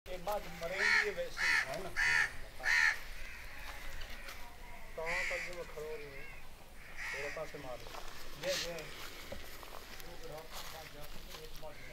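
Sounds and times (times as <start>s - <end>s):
crow cawing: 0.6s - 7.8s, 11.6s - 11.9s.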